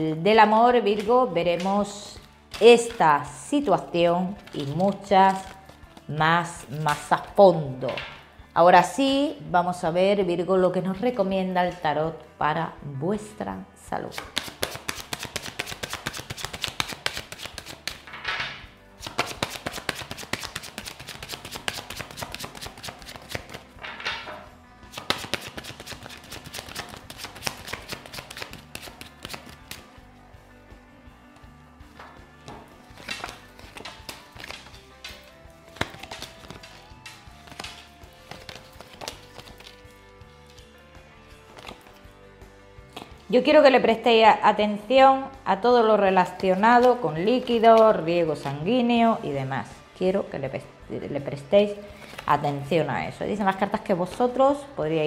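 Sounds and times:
soft background music: 0:00.0 - 0:55.0
cards being shuffled: 0:04.4 - 0:06.1, 0:14.1 - 0:18.2, 0:19.0 - 0:23.8, 0:24.9 - 0:30.0, 0:32.4 - 0:40.7, 0:41.4 - 0:42.1, 0:42.9 - 0:43.2, 0:52.0 - 0:52.4.

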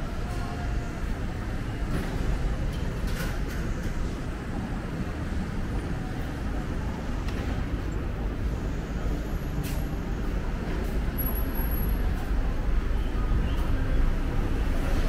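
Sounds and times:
road traffic rumble: 0:00.0 - 0:15.0.

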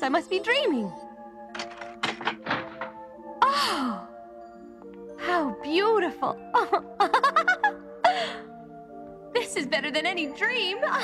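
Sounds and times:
soft background music: 0:00.0 - 0:11.0
key turning in door lock: 0:01.5 - 0:03.2.

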